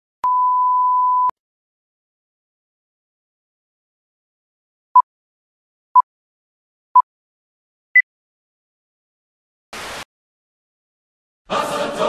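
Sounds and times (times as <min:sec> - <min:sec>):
steady test tone beep: 0:00.2 - 0:01.3.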